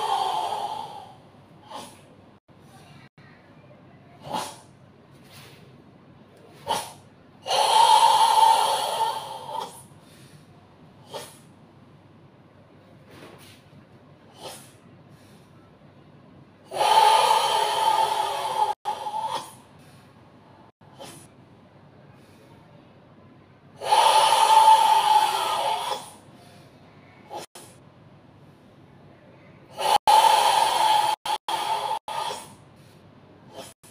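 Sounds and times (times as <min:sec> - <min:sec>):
short sharp breath: 0:08.8 - 0:11.5, 0:14.4 - 0:15.7, 0:22.1 - 0:22.7, 0:26.0 - 0:27.8
loud strained exhale: 0:29.7 - 0:33.9.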